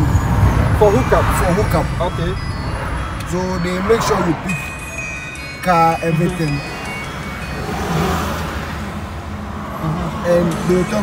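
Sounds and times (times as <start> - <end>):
engine and tyre rumble: 0.0 - 11.0
wind and tyre hiss: 0.0 - 11.0.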